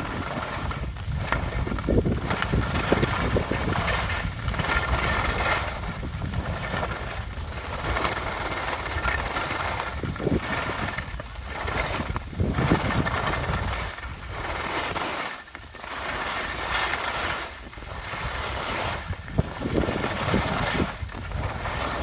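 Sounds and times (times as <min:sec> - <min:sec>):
skis scraping on packed snow: 0:00.0 - 0:22.0
wind rumbling on microphone: 0:00.0 - 0:22.0.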